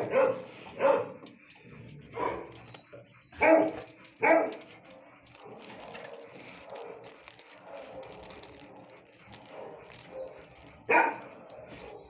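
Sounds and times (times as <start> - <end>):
dog barking: 0.0 - 1.2, 2.1 - 2.6, 3.4 - 12.0.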